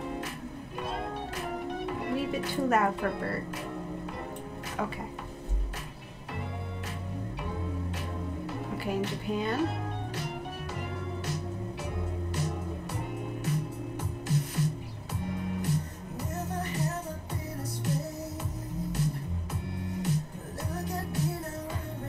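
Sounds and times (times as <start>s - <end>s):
pop song beat with bass: 0.0s - 22.0s
person singing: 15.7s - 19.4s, 20.1s - 22.0s.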